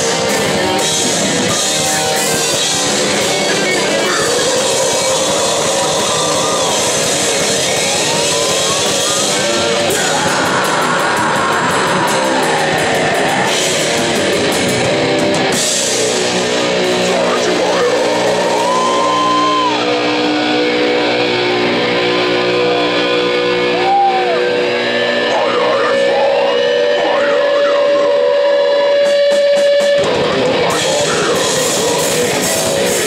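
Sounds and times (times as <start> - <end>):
distorted guitars: 0.0 - 33.0
drums: 0.0 - 33.0.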